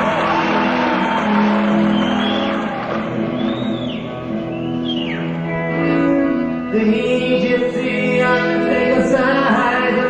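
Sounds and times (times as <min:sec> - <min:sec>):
audience noise: 0:00.0 - 0:06.7
live band sustained chords: 0:00.0 - 0:10.0.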